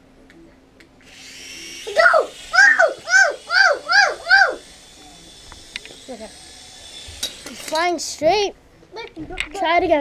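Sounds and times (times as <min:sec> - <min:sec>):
toy drone propellers whirring: 0:01.0 - 0:08.4
child shouting: 0:01.9 - 0:04.7.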